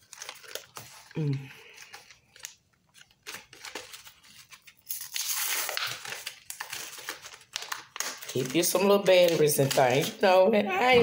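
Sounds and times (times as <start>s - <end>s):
plastic packaging clicks and crinkles: 0.0s - 10.4s
plastic packaging tearing: 0.0s - 10.4s.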